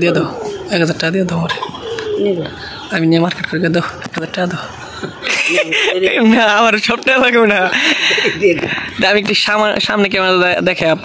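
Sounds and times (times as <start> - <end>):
elderly woman speaking: 0.0 - 1.9, 2.6 - 11.0.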